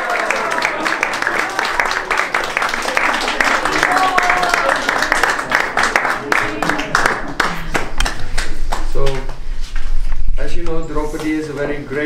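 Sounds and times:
hand claps: 0.0s - 9.4s.

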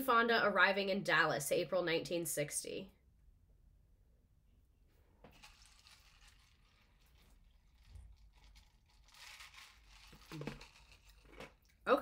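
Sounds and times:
crunchy crinkly noises: 5.4s - 11.8s.

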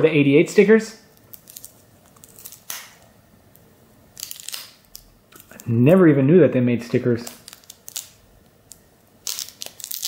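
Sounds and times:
wrapper tearing and crinkling: 1.1s - 3.0s, 4.1s - 5.7s, 7.2s - 10.0s.

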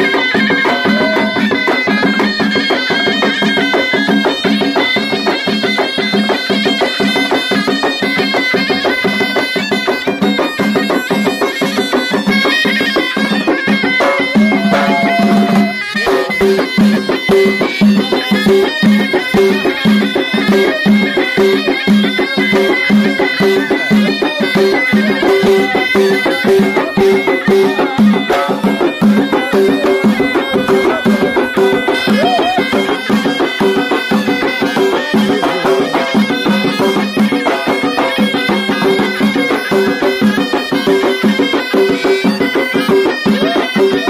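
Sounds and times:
double-reed shawms playing folk melody: 0.0s - 44.0s
hand drums beating: 0.0s - 44.0s.

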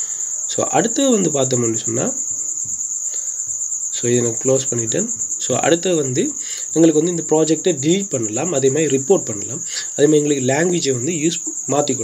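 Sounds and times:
continuous high-pitched trill: 0.0s - 12.0s
man talking: 0.5s - 2.2s, 4.0s - 12.0s.

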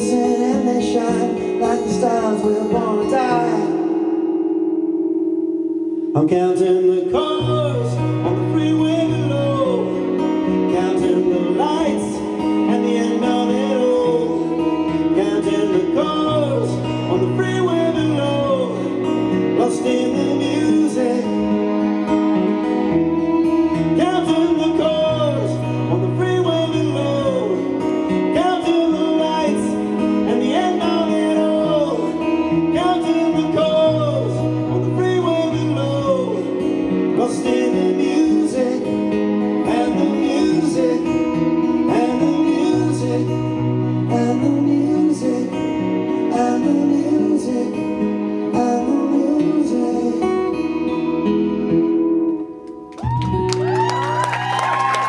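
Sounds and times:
person singing: 0.0s - 5.0s, 5.9s - 52.6s
acoustic guitar: 0.0s - 55.0s.

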